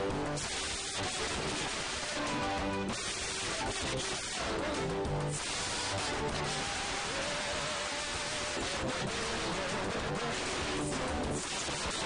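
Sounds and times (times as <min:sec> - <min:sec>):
lead singer on microphone: 0:00.0 - 0:12.0
backing singers: 0:03.5 - 0:12.0.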